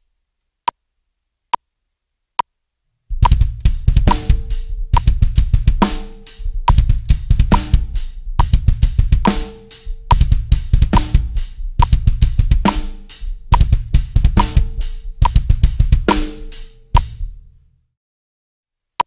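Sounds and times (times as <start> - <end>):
kick drum runs: 3.1 - 5.8, 6.6 - 9.3, 10.1 - 12.8, 13.4 - 16.1
cymbals: 3.1 - 17.3
snare drum backbeat: 3.1 - 17.4.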